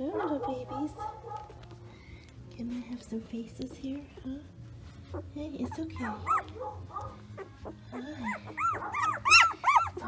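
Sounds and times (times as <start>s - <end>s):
puppies squealing: 5.0s - 10.0s.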